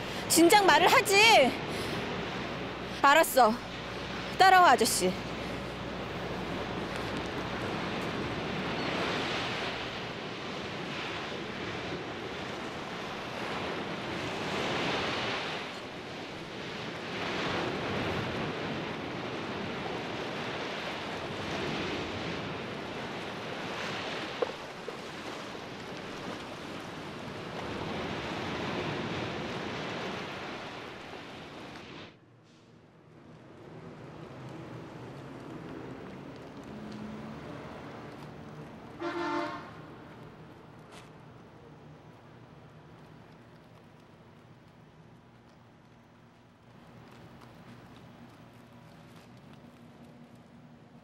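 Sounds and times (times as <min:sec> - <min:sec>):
sea waves against a wall: 0:00.0 - 0:32.2.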